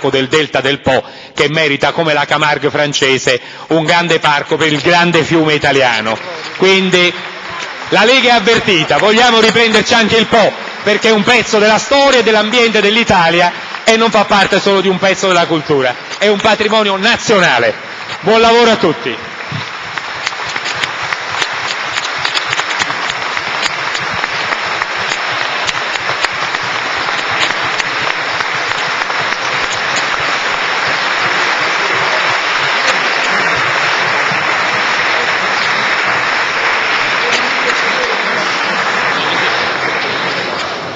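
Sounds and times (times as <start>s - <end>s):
audience applauding: 3.7s - 40.9s.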